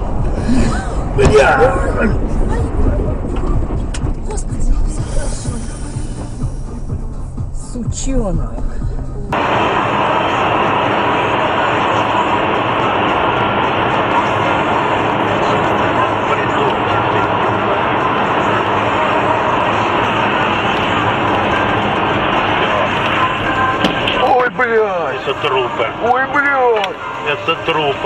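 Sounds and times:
car driving on highway: 0.0 - 28.0.

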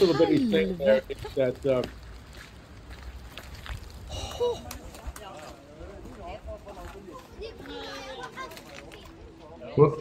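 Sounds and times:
faint overlapping chatter: 0.0 - 2.4, 4.1 - 10.0.

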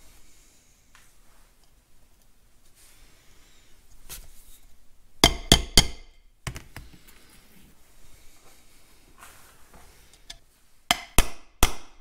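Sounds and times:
hammer striking metal: 5.2 - 6.2, 10.9 - 12.0.

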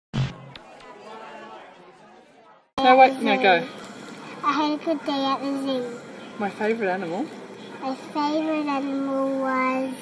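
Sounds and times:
faint background chatter: 0.3 - 10.0.

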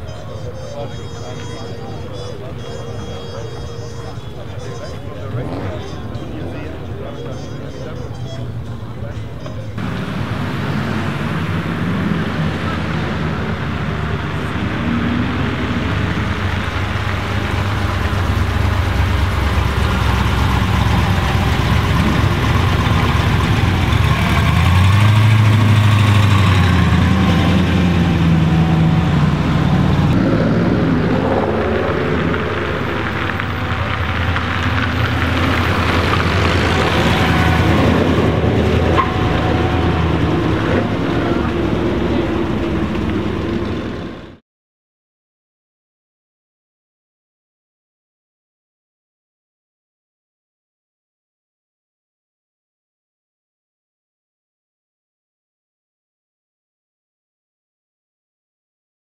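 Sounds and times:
car engine running: 1.5 - 44.4.

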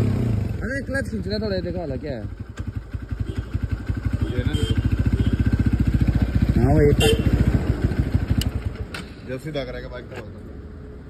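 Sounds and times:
motorcycle engine idling: 0.0 - 9.2.

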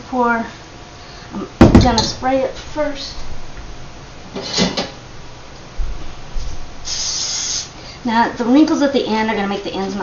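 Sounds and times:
low thumps: 1.6 - 2.3
kitchen handling clatter: 4.4 - 5.0
cooking spray hissing: 6.8 - 7.8.

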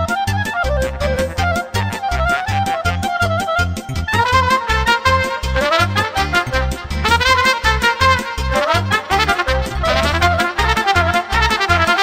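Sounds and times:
band accompaniment with bass beat: 0.0 - 12.0
solo trumpet melody: 0.0 - 12.0.

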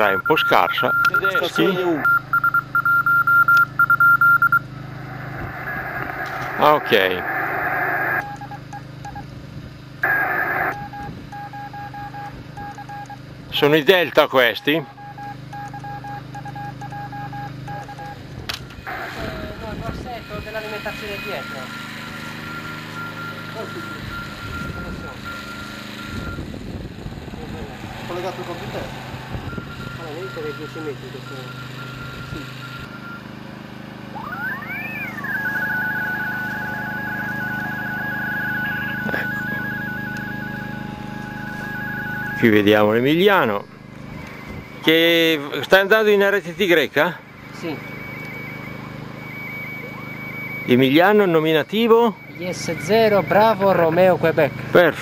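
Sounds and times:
morse code beeps: 0.0 - 9.3, 10.0 - 13.3, 14.0 - 18.2, 18.9 - 26.5, 29.3 - 33.4, 34.1 - 55.0
radio tone keyed on and off: 0.0 - 9.3, 10.0 - 13.2, 18.8 - 26.5, 27.3 - 55.0
steady low hum: 0.0 - 55.0.

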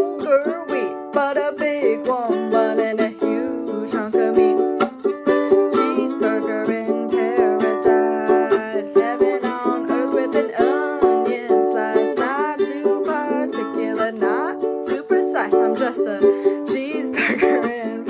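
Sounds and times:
ukulele strumming chords: 0.0 - 18.0
woman singing: 0.0 - 18.0.

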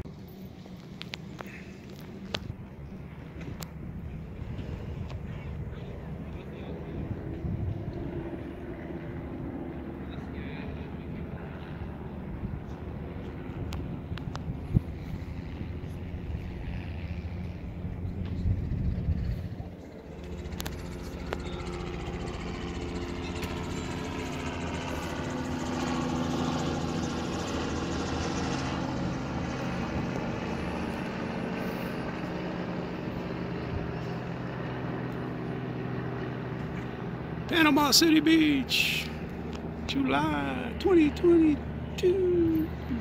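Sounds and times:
propeller plane engine drone: 0.0 - 43.0.

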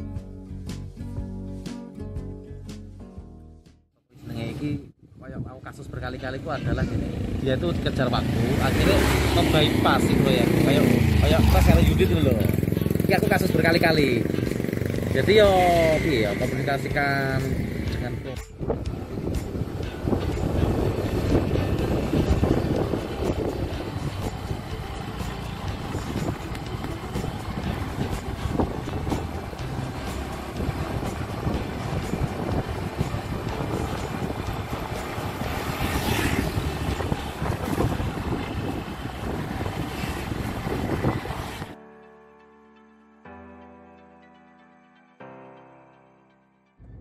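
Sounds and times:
motorcycle running: 6.0 - 41.8
wind rushing over microphone: 17.4 - 41.8.

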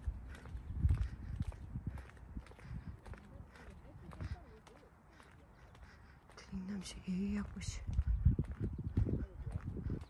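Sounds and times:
footsteps on concrete: 0.0 - 10.0.

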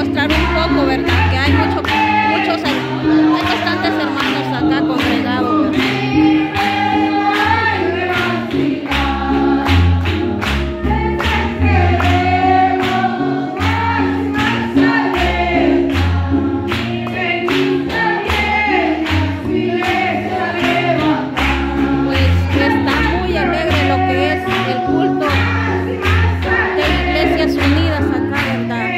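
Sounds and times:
woman singing lead: 0.0 - 9.6, 16.7 - 28.9
bass line: 0.0 - 28.9
congregation singing along: 0.0 - 28.9.

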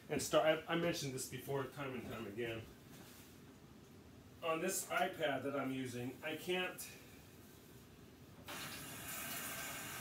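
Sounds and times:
water tap running: 8.5 - 10.0.

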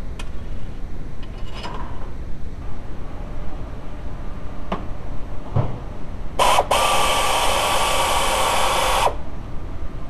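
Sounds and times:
air ratchet whirring: 6.4 - 9.2.

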